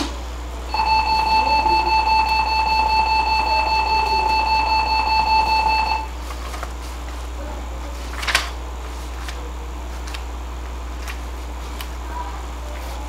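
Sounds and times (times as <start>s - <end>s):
electronic school bell: 0.7s - 6.1s.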